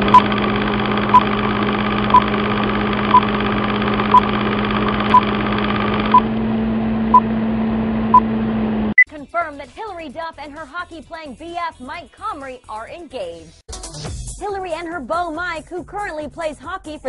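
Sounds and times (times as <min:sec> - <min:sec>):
mechanical machinery hum: 0:00.0 - 0:09.0.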